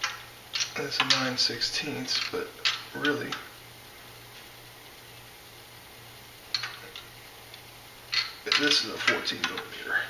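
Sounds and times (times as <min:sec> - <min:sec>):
faint steady hum: 0:00.0 - 0:10.0
metal wrench clinking: 0:08.1 - 0:08.8.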